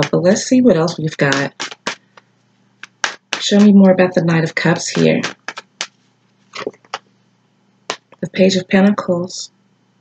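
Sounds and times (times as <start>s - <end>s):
cards rustling: 0.9s - 3.8s, 4.6s - 7.0s
card snapping: 1.3s - 3.8s, 4.9s - 6.0s, 6.6s - 7.0s, 7.9s - 8.2s.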